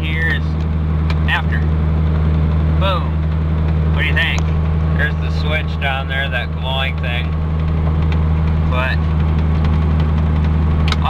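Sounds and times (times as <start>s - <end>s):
engine droning: 0.0s - 11.0s
road noise: 0.0s - 11.0s.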